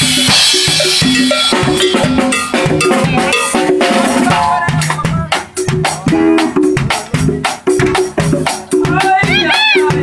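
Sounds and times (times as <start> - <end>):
band playing short pitched notes: 0.0 - 7.5
drum and cymbal strokes: 0.0 - 10.0.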